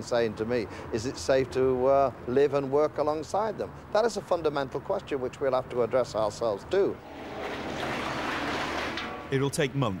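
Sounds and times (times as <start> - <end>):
excavator scraping metal: 7.0 - 9.4.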